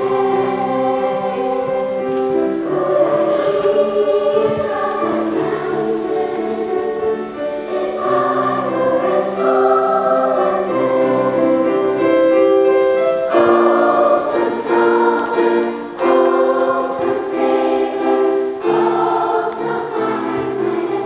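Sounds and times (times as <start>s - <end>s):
children's choir singing: 0.0s - 21.0s
piano accompaniment: 0.0s - 21.0s.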